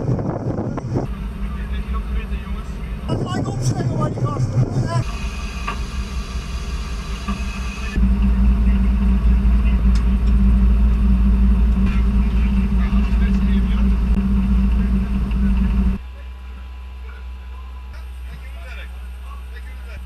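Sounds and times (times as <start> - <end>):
boat engines humming: 0.0 - 20.0.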